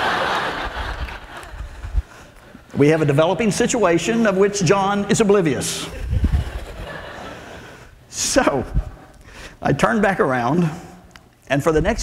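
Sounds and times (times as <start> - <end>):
audience laughter: 0.0 - 1.9, 5.9 - 7.8.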